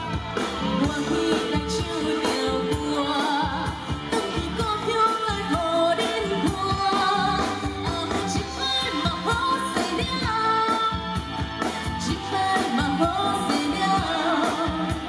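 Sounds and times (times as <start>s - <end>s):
live band playing: 0.0s - 15.0s
woman singing into microphone: 0.0s - 15.0s.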